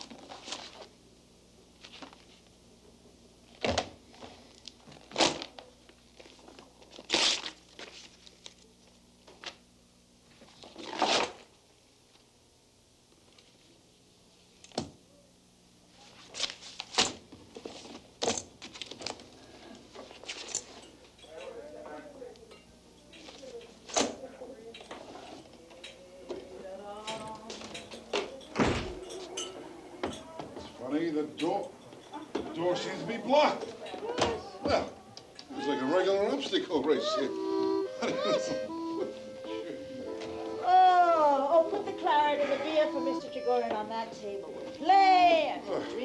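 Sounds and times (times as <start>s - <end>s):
paper ripping: 6.9s - 8.5s, 10.6s - 11.5s
faint indistinct voices: 20.6s - 46.0s.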